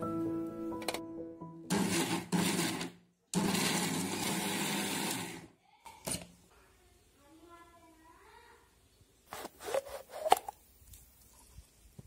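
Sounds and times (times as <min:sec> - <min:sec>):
mixer grinder grinding: 0:01.7 - 0:05.5.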